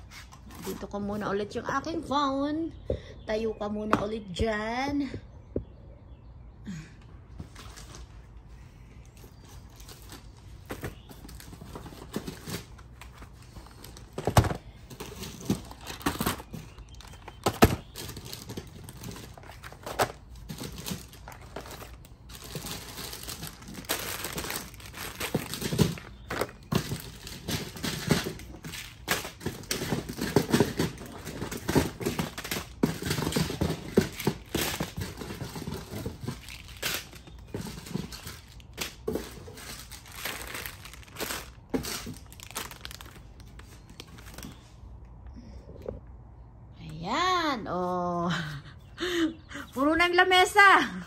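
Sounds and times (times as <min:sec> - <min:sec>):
plastic candy packaging crinkling: 0:09.0 - 0:44.8
packages knocking when set down: 0:09.9 - 0:43.2.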